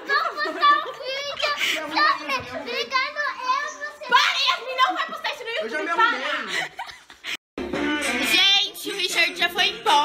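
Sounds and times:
young girls talking and squealing: 0:00.0 - 0:06.8.

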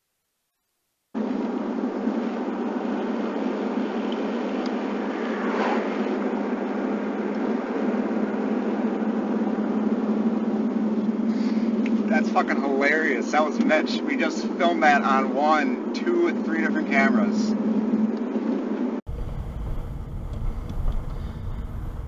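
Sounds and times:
truck road and engine noise: 0:01.2 - 0:22.0.

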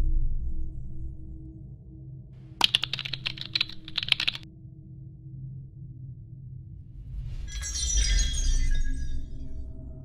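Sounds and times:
computer keyboard typing: 0:02.6 - 0:04.4.

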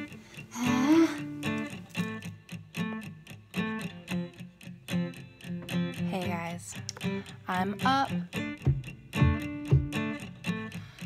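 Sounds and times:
plucked and strummed guitar: 0:00.0 - 0:11.0.

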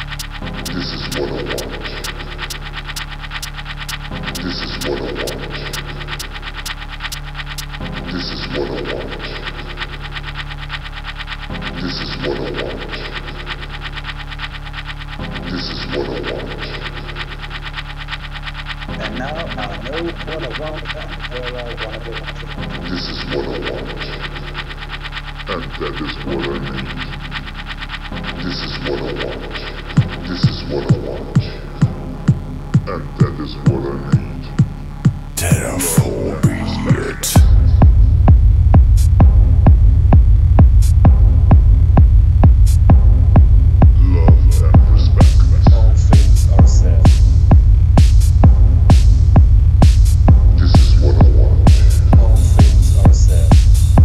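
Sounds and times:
hard techno music: 0:00.0 - 0:54.0.

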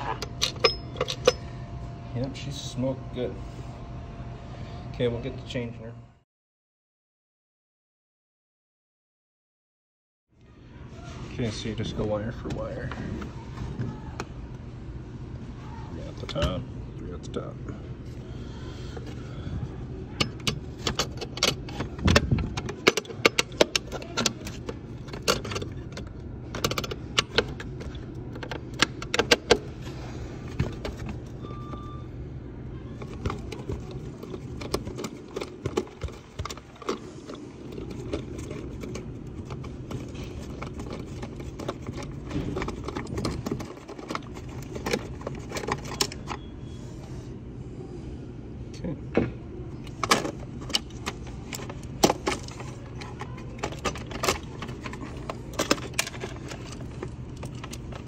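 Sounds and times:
steady low hum: 0:00.0 - 0:06.2, 0:10.4 - 0:58.0.

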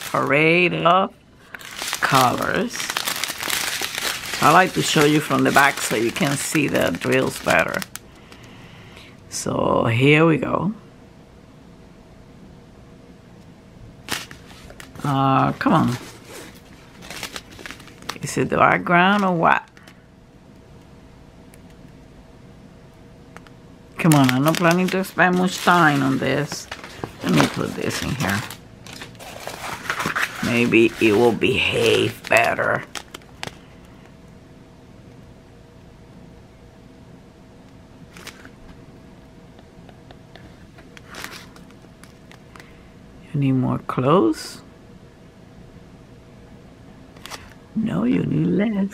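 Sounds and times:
faint steady hum: 0:00.0 - 0:48.9
plastic bag clicks: 0:23.4 - 0:29.2, 0:31.9 - 0:33.6.

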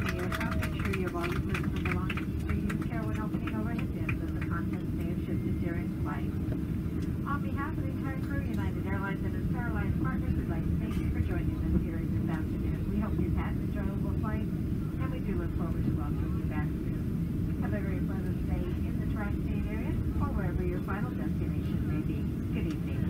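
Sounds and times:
airplane cabin rumble: 0:00.0 - 0:23.0.

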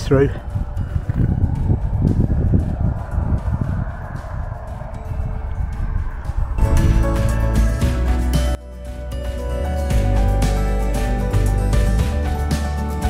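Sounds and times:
low rumbling noise: 0:00.0 - 0:12.4
music with sustained notes: 0:00.0 - 0:13.0.

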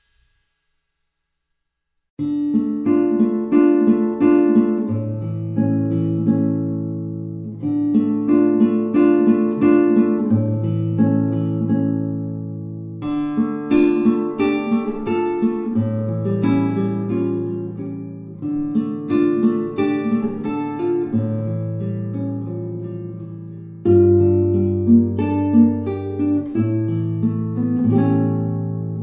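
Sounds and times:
acoustic guitar melody: 0:02.2 - 0:29.0.

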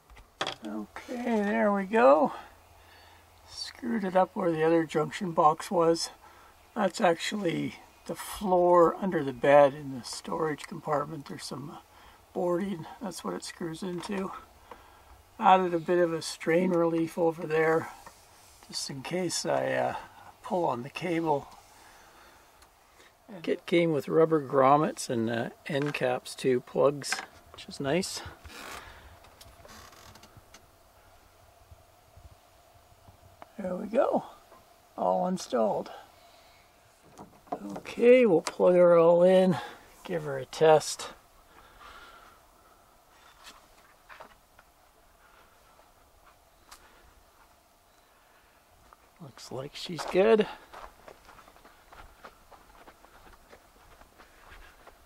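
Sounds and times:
footsteps on grassy earth: 0:50.0 - 0:55.0.

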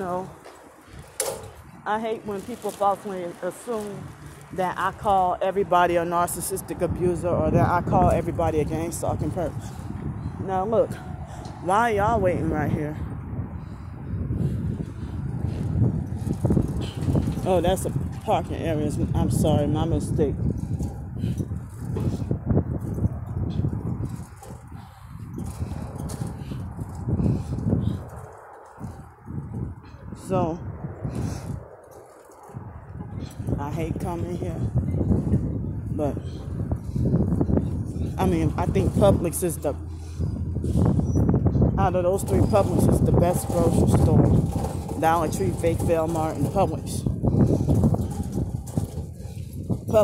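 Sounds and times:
wind buffeting microphone: 0:00.0 - 0:50.0.

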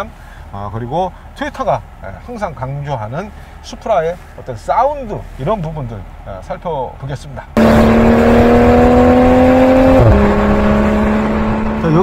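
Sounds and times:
car engine accelerating: 0:07.6 - 0:12.0.

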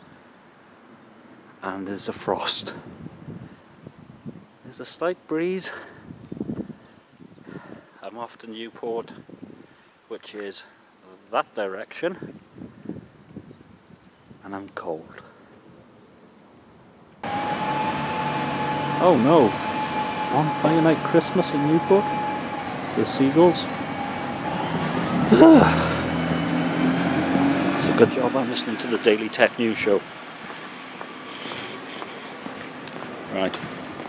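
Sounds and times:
distant traffic hum: 0:14.8 - 0:34.0
high constant whine: 0:17.0 - 0:24.7
footsteps on stone paving: 0:30.3 - 0:34.0.

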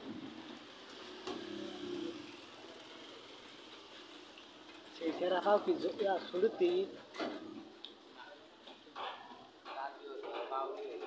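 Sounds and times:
light road traffic: 0:00.0 - 0:11.0.

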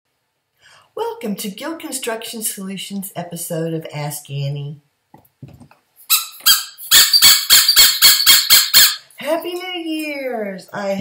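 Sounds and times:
squeaky dog toy squeaking: 0:06.1 - 0:09.1.

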